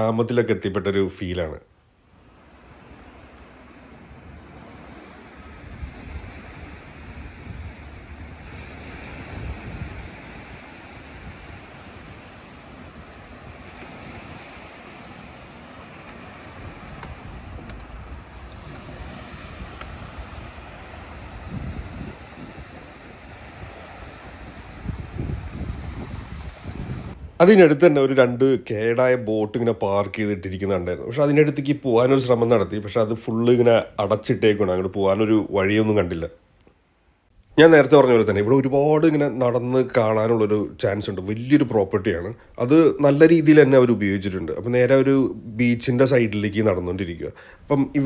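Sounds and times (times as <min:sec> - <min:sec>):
small waves breaking on beach: 0:02.1 - 0:35.3
wind buffeting microphone: 0:03.8 - 0:28.3.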